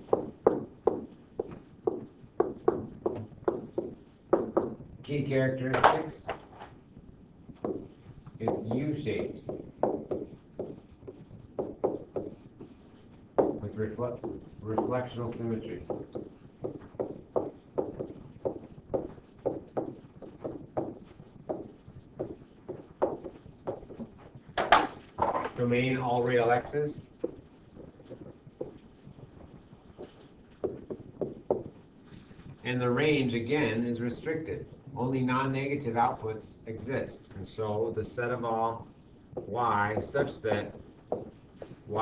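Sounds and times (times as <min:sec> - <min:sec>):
stylus tapping on tablet screen: 0:00.0 - 0:04.9, 0:07.5 - 0:25.5, 0:27.0 - 0:32.5, 0:39.3 - 0:41.9.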